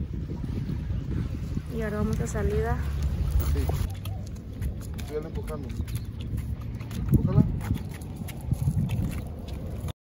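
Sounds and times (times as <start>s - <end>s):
footsteps: 2.8s - 9.9s.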